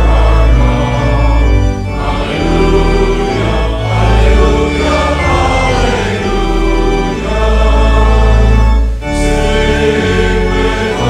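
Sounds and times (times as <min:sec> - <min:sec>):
congregation singing a hymn: 0:00.0 - 0:11.0
organ bass notes: 0:00.0 - 0:11.0.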